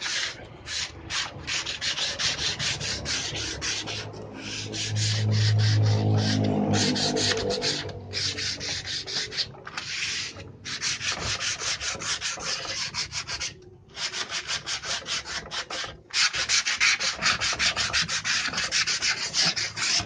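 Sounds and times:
sandpaper rubbing on wood: 0:00.0 - 0:20.0.

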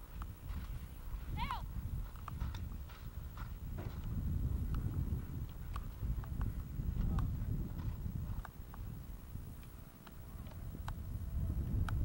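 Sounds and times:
hooves galloping on grass: 0:00.0 - 0:12.0.

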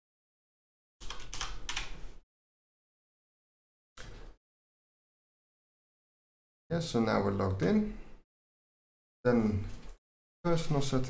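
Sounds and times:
computer keyboard keystrokes: 0:01.0 - 0:02.0.

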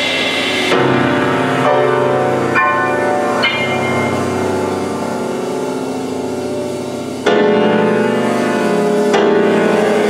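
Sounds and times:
grand piano improvisation: 0:00.0 - 0:10.0.

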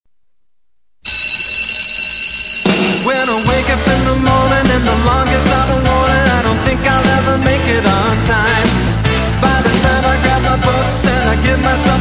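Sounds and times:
alarm ringing: 0:01.0 - 0:04.5.

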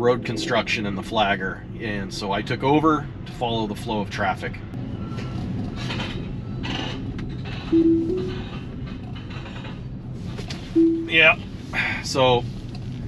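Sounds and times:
road and tyre hum: 0:00.0 - 0:13.0
short loud tone: 0:07.8 - 0:08.5.

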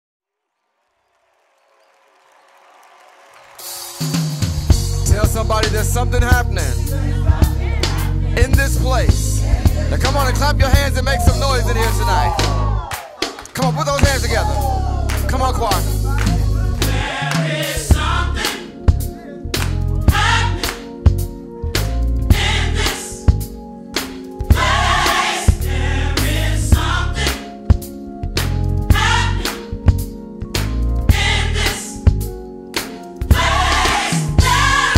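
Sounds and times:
live gospel band and crowd: 0:01.8 - 0:34.9.

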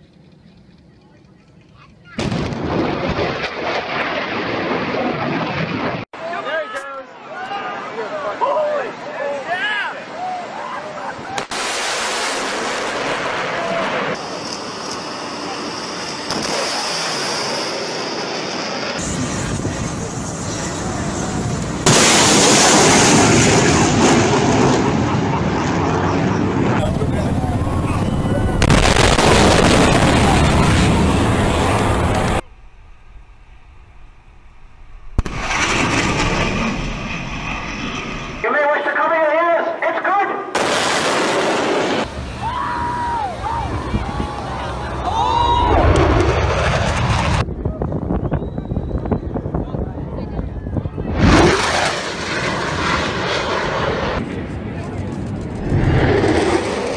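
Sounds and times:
fighter jets passing: 0:02.2 - 0:06.0, 0:11.6 - 0:39.9, 0:40.5 - 0:56.9
people's voices: 0:26.8 - 0:28.9, 0:42.2 - 0:46.0.

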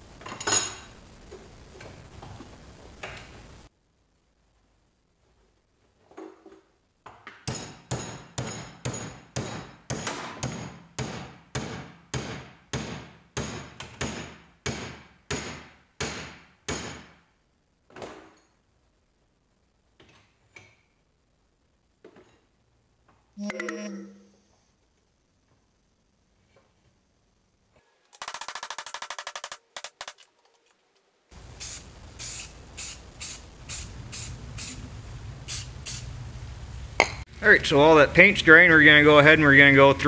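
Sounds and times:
hammer striking steel bar: 0:07.5 - 0:17.1.

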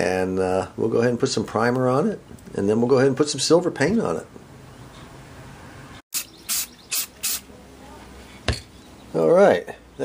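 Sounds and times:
aerosol spray hiss: 0:06.2 - 0:07.5.

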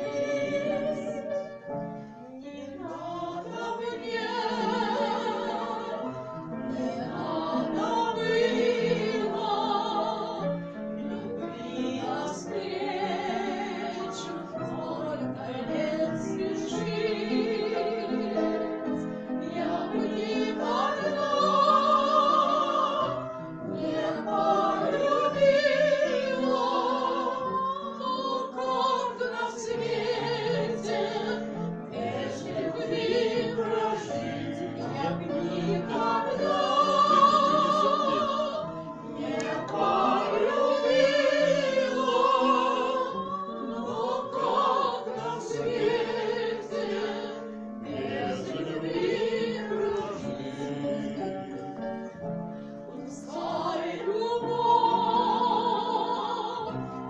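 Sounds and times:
upright piano: 0:00.0 - 0:57.0
women singing with vibrato: 0:02.4 - 0:51.6, 0:52.9 - 0:57.0.

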